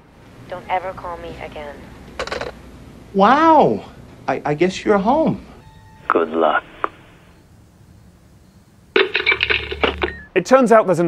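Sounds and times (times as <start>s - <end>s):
rapidly pulsing telephone buzz: 5.6s - 10.3s.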